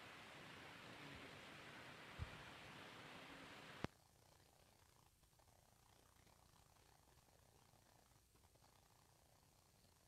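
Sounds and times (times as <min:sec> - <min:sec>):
faint low room hum: 0:00.0 - 0:10.0.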